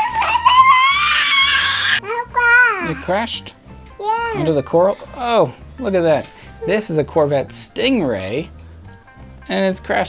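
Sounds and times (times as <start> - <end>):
child squealing: 0.0 - 3.0.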